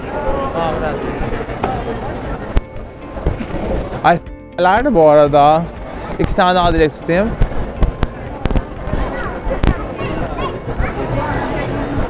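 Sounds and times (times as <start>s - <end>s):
street background: 0.0s - 12.0s.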